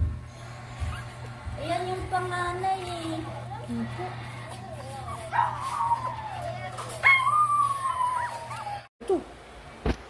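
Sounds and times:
puppy yelp: 0:00.8 - 0:01.2, 0:04.8 - 0:08.9
puppy whining cries: 0:00.8 - 0:01.3, 0:03.2 - 0:08.9.

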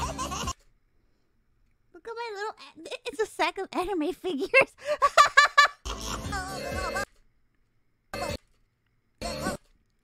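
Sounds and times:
cartoon character voice: 0:02.0 - 0:04.8.

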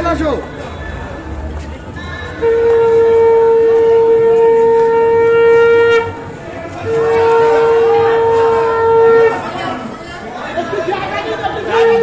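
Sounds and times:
conch shell blown: 0:02.4 - 0:09.6.

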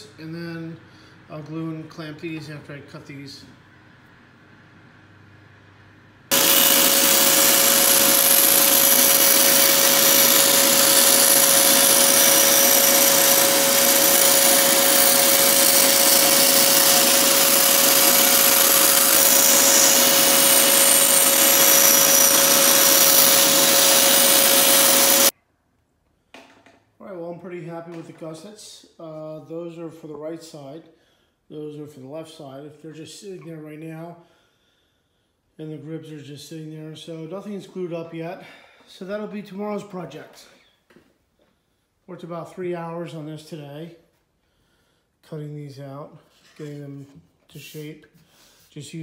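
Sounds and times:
bandsaw whirring and whining: 0:06.3 - 0:25.3.

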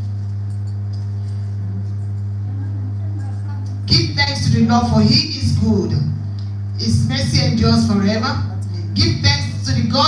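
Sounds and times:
sound system hum: 0:00.0 - 0:10.0.

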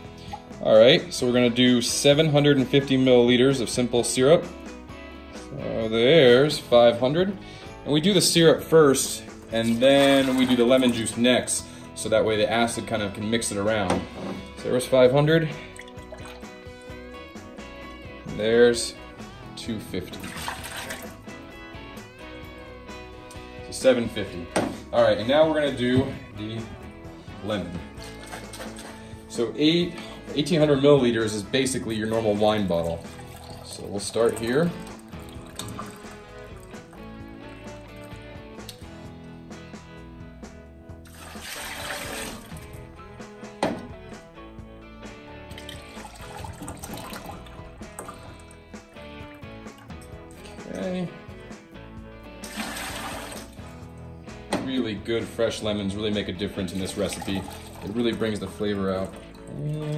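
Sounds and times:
background music: 0:00.0 - 0:59.9
juice pouring into container: 0:08.6 - 0:12.0, 0:15.5 - 0:18.0, 0:20.1 - 0:21.5, 0:27.2 - 0:30.5, 0:31.9 - 0:38.8, 0:41.0 - 0:42.9, 0:45.5 - 0:50.9, 0:52.3 - 0:54.0, 0:56.7 - 0:59.9
rushing splash: 0:20.2 - 0:21.1, 0:52.4 - 0:53.6
syrup pouring into plastic container: 0:32.9 - 0:36.6, 0:41.1 - 0:42.7, 0:52.4 - 0:53.7.

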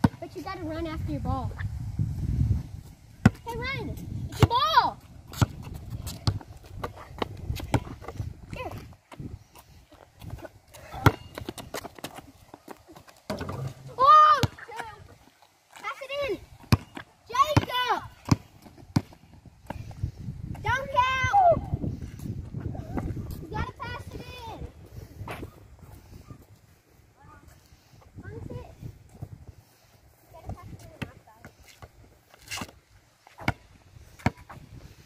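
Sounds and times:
basketball bouncing: 0:03.2 - 0:03.5, 0:05.3 - 0:08.1, 0:10.9 - 0:12.2, 0:13.3 - 0:14.9, 0:16.6 - 0:19.2
children calling out: 0:13.9 - 0:14.9.

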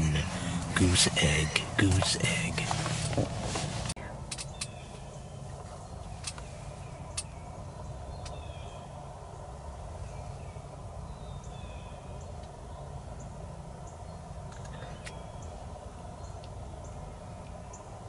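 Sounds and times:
low rumble: 0:00.0 - 0:04.3
rustles in dry leaves: 0:00.0 - 0:07.8
bird chirps: 0:04.4 - 0:18.0.

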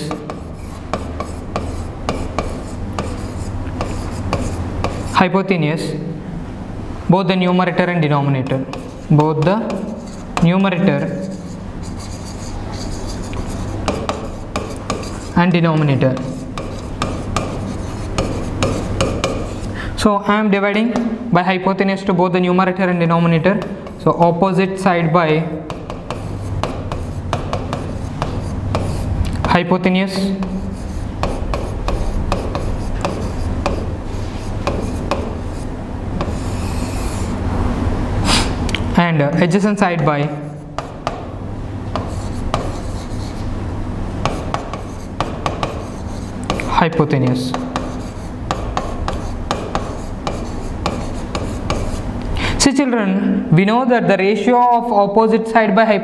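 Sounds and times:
marker tapping on whiteboard: 0:00.0 - 0:05.1, 0:08.4 - 0:10.5, 0:12.0 - 0:19.6, 0:25.7 - 0:33.9, 0:34.6 - 0:35.4, 0:36.2 - 0:36.5, 0:40.8 - 0:41.3, 0:41.9 - 0:43.3, 0:44.2 - 0:52.0
marker squeaking on whiteboard: 0:00.0 - 0:05.2, 0:08.4 - 0:19.7, 0:25.7 - 0:37.4, 0:41.9 - 0:43.5, 0:44.2 - 0:52.0
pen writing on a board: 0:00.0 - 0:05.2, 0:08.4 - 0:15.4, 0:16.0 - 0:19.7, 0:25.6 - 0:37.3, 0:40.8 - 0:41.3, 0:41.9 - 0:43.5, 0:44.2 - 0:52.1
low room hum: 0:00.0 - 0:56.0.

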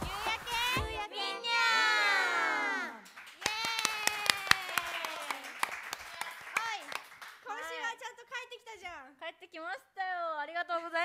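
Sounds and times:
hands clapping quickly: 0:03.0 - 0:07.8.

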